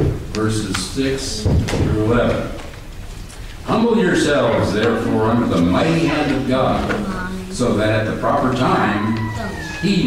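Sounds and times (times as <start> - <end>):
person speaking: 3.7 - 10.0.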